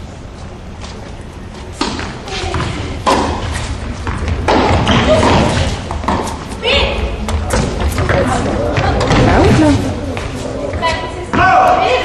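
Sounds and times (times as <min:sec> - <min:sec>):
rackets striking tennis ball: 0:01.7 - 0:12.0
ball bouncing: 0:01.8 - 0:06.6, 0:07.3 - 0:11.5
voices talking: 0:06.5 - 0:12.0.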